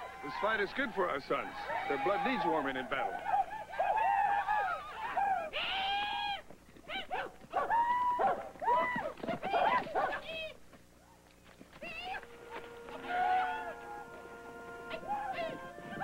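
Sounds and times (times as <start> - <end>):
high calls and cries: 0.0 - 16.0
music with long held notes: 12.2 - 16.0.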